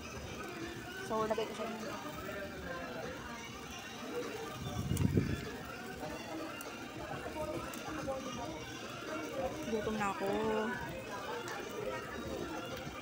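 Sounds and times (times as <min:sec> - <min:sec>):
diners chattering: 0:00.0 - 0:13.0.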